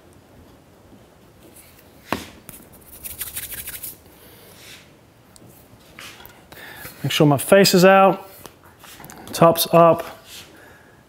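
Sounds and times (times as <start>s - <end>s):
hands rubbing together: 2.5s - 4.0s.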